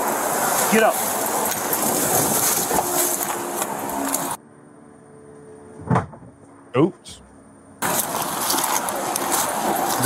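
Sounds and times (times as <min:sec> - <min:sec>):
rustling against microphone: 0:00.0 - 0:04.4, 0:07.8 - 0:10.0.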